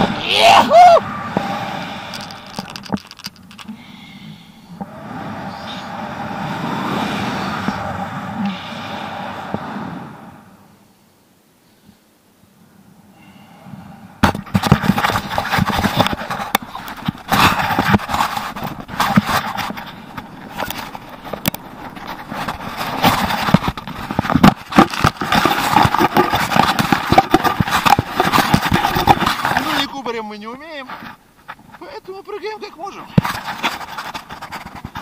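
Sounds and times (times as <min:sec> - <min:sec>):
fabric rubbing against microphone: 0:14.5 - 0:32.0, 0:32.6 - 0:35.0.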